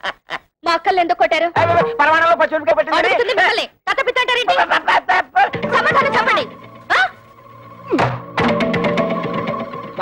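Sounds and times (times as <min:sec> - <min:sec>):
comedic film score: 0:04.6 - 0:10.0
percussive knocks: 0:05.5 - 0:06.7, 0:07.9 - 0:10.0.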